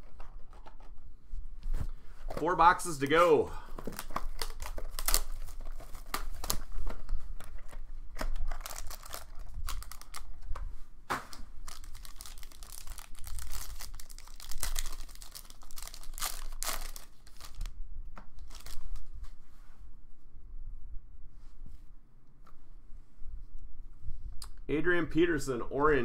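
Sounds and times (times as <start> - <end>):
plastic wrapping crinkling: 2.2 - 10.6, 11.3 - 19.2
card pack tearing: 2.3 - 6.9, 7.5 - 10.3, 11.6 - 17.7, 18.4 - 19.0.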